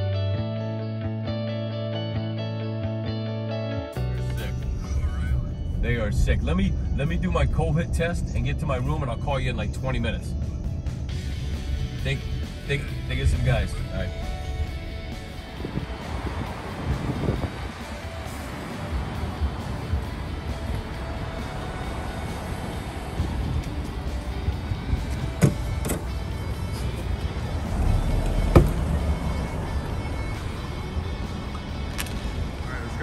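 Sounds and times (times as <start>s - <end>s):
music playing: 0.0s - 33.0s
car road noise and engine rumble: 4.0s - 33.0s
sharp knocks: 25.3s - 26.2s, 28.5s - 28.8s.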